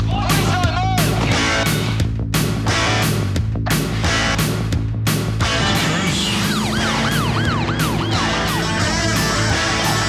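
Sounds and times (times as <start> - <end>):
rock music with guitar: 0.0 - 10.0
siren yelping: 6.0 - 10.0.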